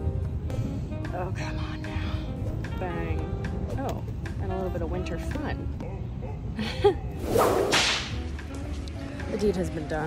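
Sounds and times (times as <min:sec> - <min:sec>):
hissing whoosh: 0:07.2 - 0:08.2.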